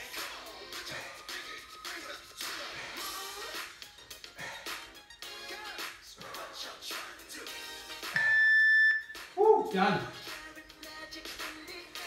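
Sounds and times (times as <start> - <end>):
background music: 0.0 - 12.0
long high timer beep: 8.2 - 9.2.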